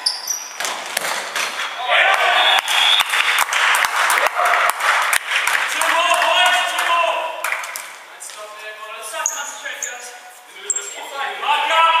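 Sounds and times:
hands clapping: 1.0s - 8.5s
players shouting: 1.8s - 3.1s, 5.7s - 7.4s, 11.3s - 12.0s.

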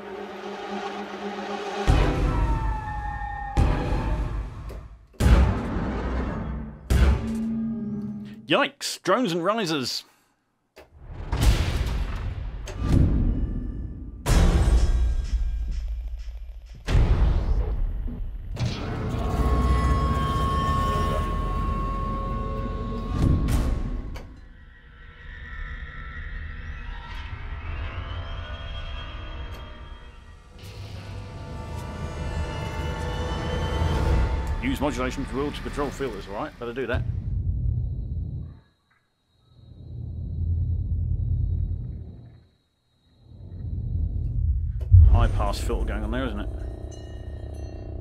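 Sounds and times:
dark drones: 15.8s - 38.7s, 43.3s - 48.0s
deep hits with rumbling tails: 43.7s - 46.6s.

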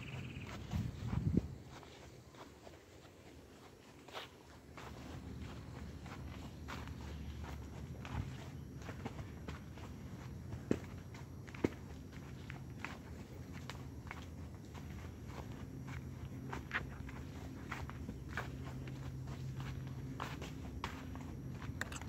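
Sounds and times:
hooves crunching dry leaves: 0.0s - 21.8s.

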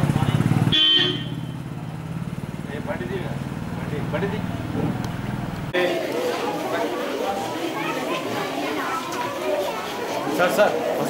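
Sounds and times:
man talking: 2.6s - 5.0s.

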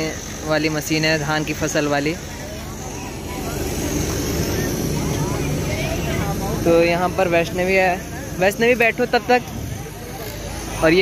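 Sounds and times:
combine harvester engine rumbling: 0.0s - 11.0s.

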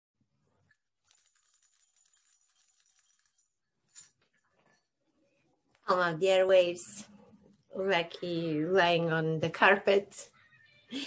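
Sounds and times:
faint high rustling or jingling: 1.0s - 4.9s.

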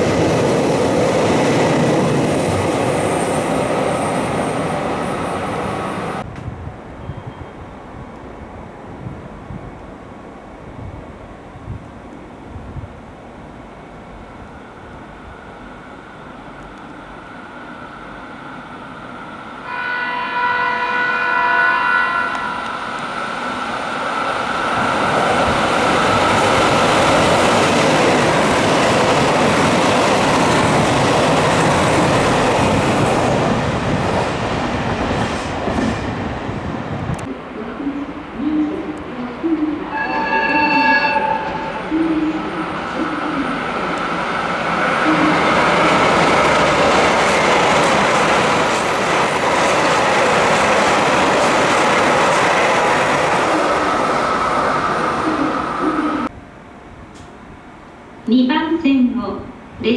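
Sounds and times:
train horn: 19.6s - 23.1s, 39.9s - 42.0s.

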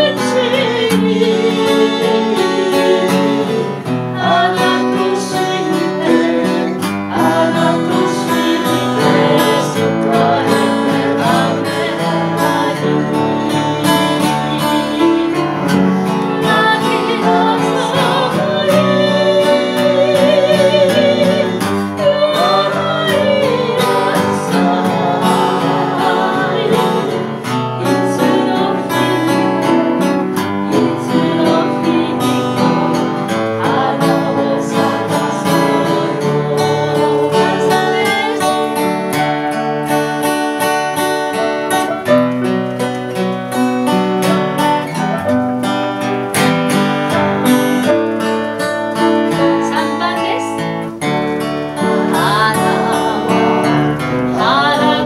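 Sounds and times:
instrumental accompaniment: 0.0s - 55.0s
voices singing: 0.0s - 55.0s.

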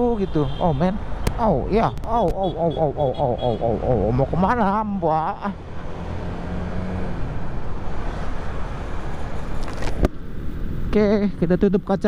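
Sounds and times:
motorcycle engine humming: 0.0s - 12.0s
wind and road hiss: 5.6s - 12.0s.

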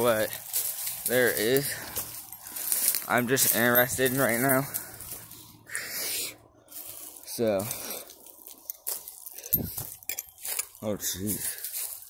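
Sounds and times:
footsteps on dry leaves and sticks: 0.0s - 12.0s.

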